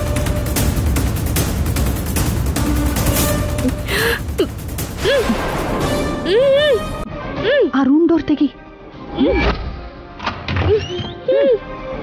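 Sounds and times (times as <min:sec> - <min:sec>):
dramatic background music: 0:00.0 - 0:12.0
woman gasping: 0:03.7 - 0:05.3.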